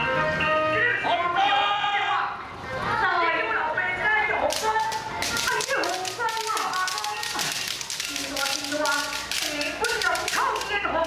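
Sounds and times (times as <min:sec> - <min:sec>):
bamboo swords clacking: 0:04.4 - 0:10.9.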